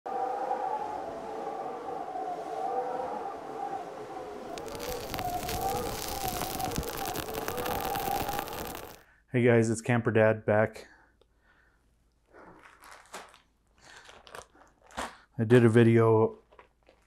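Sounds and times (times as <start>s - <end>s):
dense crackling: 4.5s - 9.0s.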